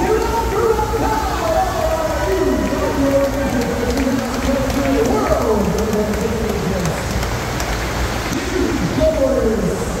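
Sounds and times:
rushing pumped water: 0.0 - 10.0.

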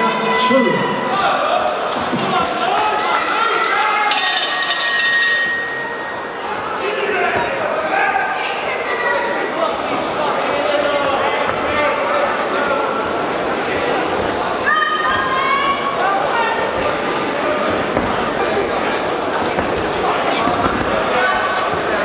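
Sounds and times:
crowd voices and shouts: 0.0 - 22.0
boxing ring bell: 4.0 - 6.4.

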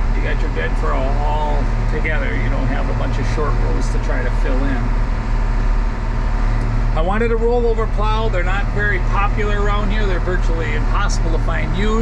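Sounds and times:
tractor diesel engine droning: 0.0 - 12.0.

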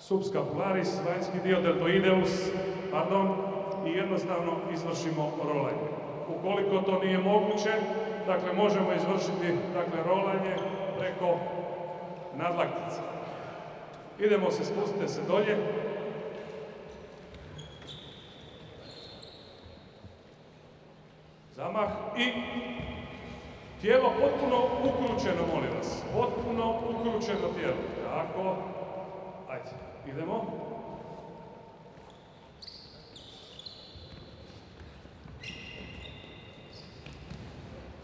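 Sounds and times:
sports shoes squeaking on wood floor: 16.3 - 20.3, 30.9 - 37.7.

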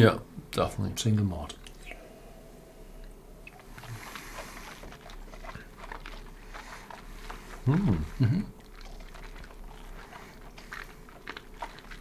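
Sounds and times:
steady low hum: 0.0 - 12.0
sips and mouth sounds: 3.4 - 12.0.

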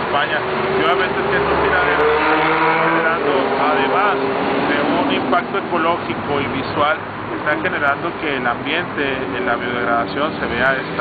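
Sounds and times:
man speaking: 0.0 - 2.3, 2.9 - 11.0
low rumble of traffic: 0.0 - 11.0.

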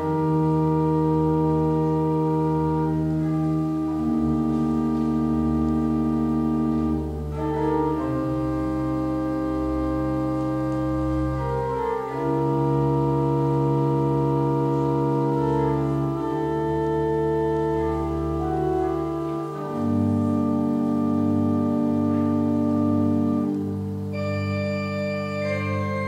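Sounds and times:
pipe organ chords: 0.0 - 26.0.

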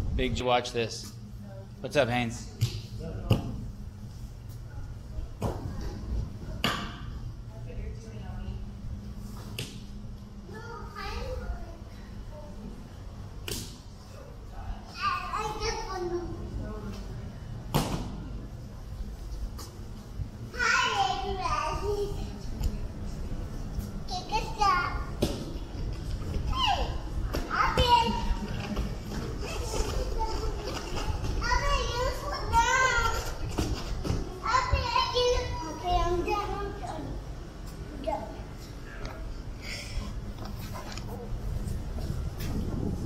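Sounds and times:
children playing: 26.2 - 37.3.

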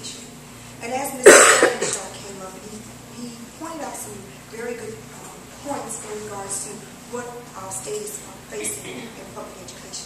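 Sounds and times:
person coughing: 1.2 - 2.0, 8.6 - 9.2.

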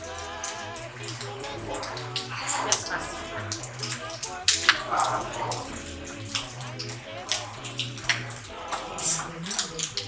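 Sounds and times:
rushing noise: 0.0 - 9.4.

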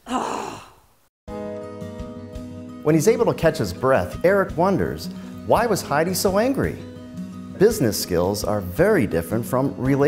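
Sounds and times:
woman sighing: 0.0 - 0.9
music with held notes: 1.3 - 10.0.

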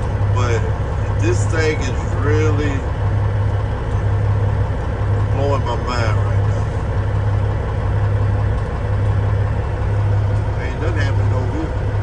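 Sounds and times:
diesel truck engine idling: 0.0 - 12.0.

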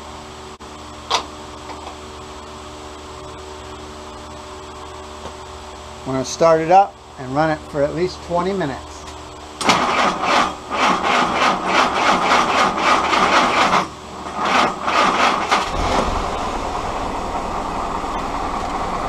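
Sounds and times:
starter cranking engine: 9.6 - 16.3
car engine idling: 14.7 - 19.0.

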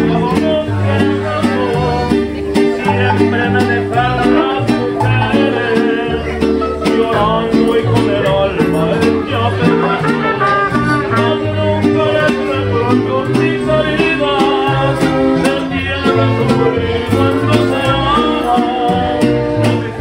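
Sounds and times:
mariachi band playing: 0.0 - 20.0.

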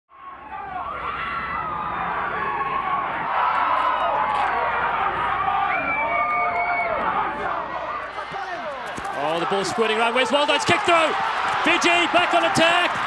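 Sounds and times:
crowd cheering: 0.1 - 13.0.

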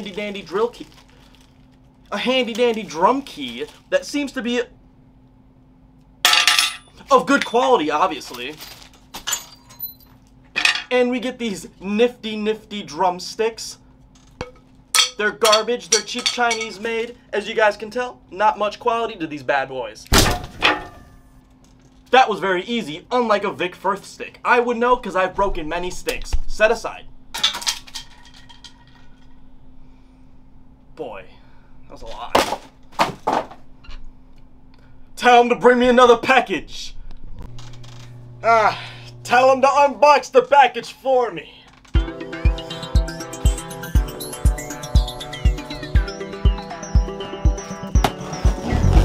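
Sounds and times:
faint steady hum: 0.0 - 42.0
objects clattering on glass table: 14.4 - 16.8, 27.4 - 29.3.

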